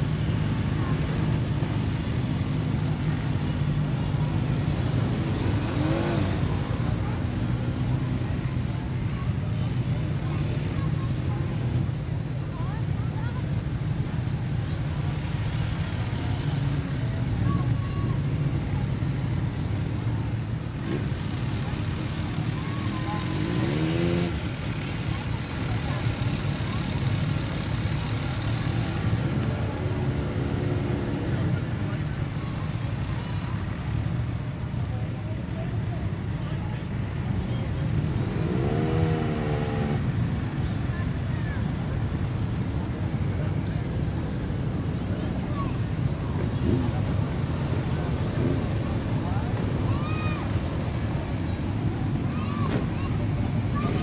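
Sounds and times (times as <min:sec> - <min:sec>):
engines revving: 0:00.0 - 0:08.7, 0:20.6 - 0:33.2, 0:37.7 - 0:41.3, 0:42.2 - 0:54.0
motorcycles and cars passing: 0:00.0 - 0:54.0.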